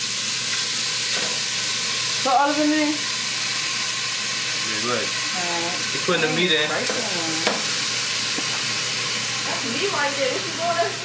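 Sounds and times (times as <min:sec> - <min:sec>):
food sizzling in a pan: 0:00.0 - 0:11.0.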